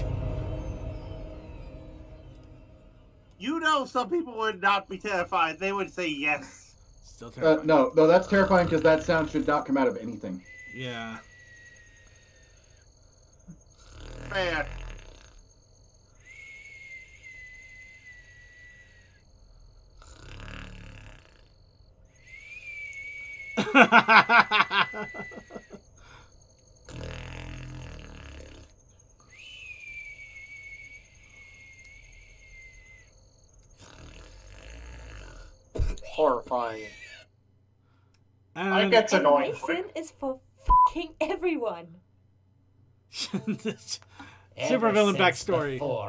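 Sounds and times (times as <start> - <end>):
high-pitched electronic tones: 39.1 - 40.0.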